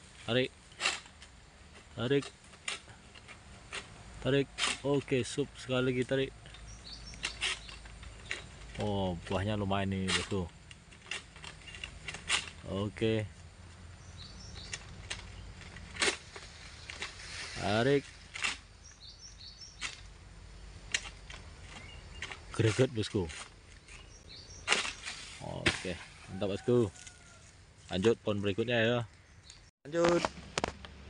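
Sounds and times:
pole sickle cracking fronds: 0.0 - 13.2, 14.2 - 20.2, 20.8 - 28.1.

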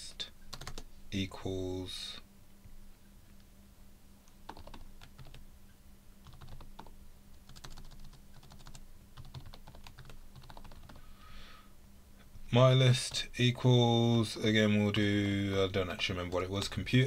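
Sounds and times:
computer keyboard typing: 0.5 - 0.8, 4.5 - 5.4, 6.2 - 6.9, 7.5 - 11.0.

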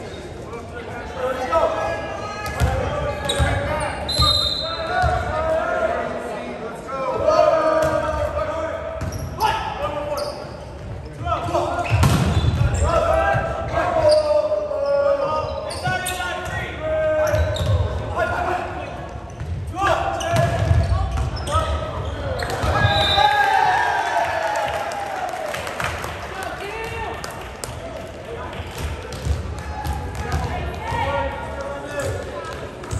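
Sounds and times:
players and spectators shouting: 19.7 - 27.2.

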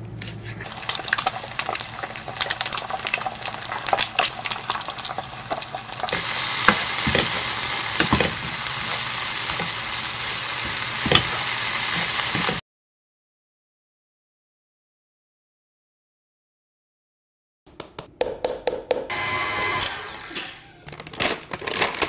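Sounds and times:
egg frying in oil: 0.6 - 12.6
food stir-frying sizzle: 0.6 - 12.6.

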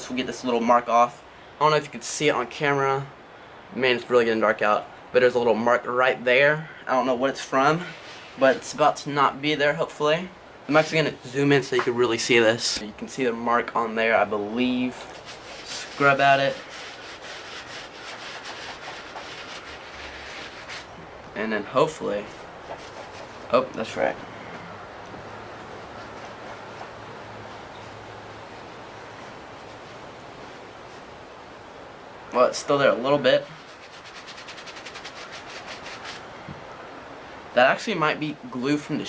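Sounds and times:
brush scrubbing a sneaker: 14.7 - 23.6, 25.8 - 27.6, 33.3 - 36.2.

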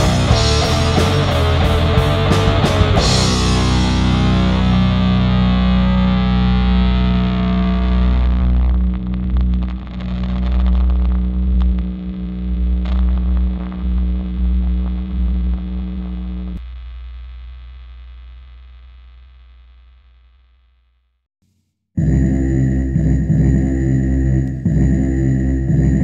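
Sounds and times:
distorted electric guitar chord: 0.0 - 16.6
low bass drone: 0.0 - 16.6, 22.0 - 26.0
noisy crackles: 2.5 - 20.7.

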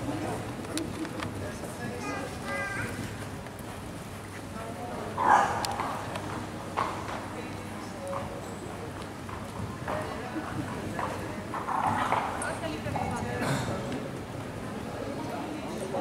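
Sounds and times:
voices in background: 0.0 - 16.0.

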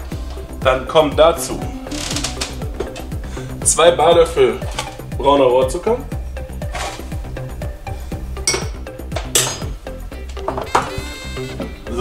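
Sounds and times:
background music with beat: 0.0 - 12.0
metal spoon clinking glass: 8.4 - 8.8.

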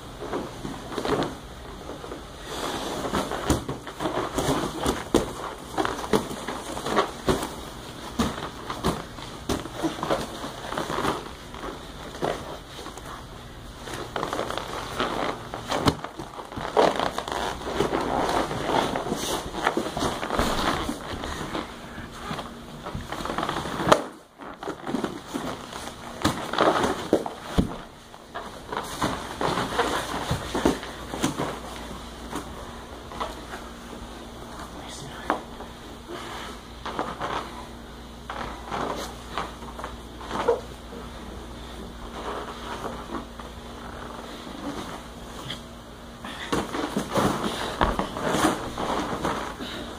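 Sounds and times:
cloth rustling: 0.1 - 34.8
bodies thumping on mats: 2.5 - 13.1, 13.8 - 33.9, 46.4 - 49.6.

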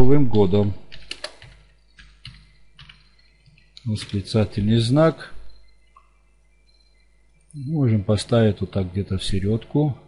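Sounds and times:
keyboard keystrokes: 0.9 - 4.2.

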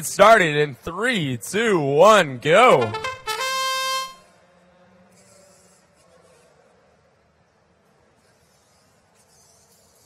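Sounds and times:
faint hall background: 0.0 - 10.0
electronic horn tone: 2.7 - 4.3.

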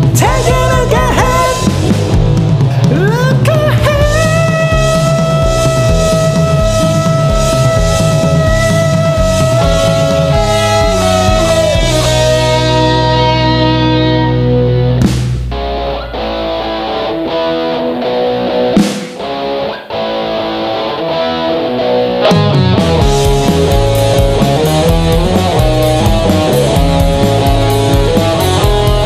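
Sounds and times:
instrumental rock band: 0.0 - 29.0
sharp drum hits: 15.0 - 16.0.

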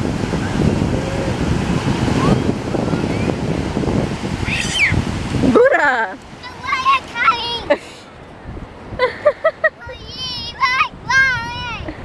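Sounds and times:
surf washing onto shore: 0.0 - 12.0
wind buffeting microphone: 0.0 - 12.0
child squealing: 4.4 - 5.0.

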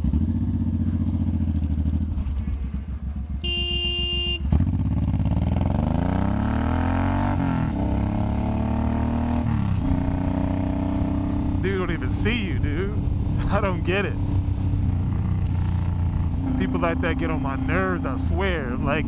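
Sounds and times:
motorcycle engine idling and revving: 0.0 - 19.0
horn honking: 2.4 - 4.7.

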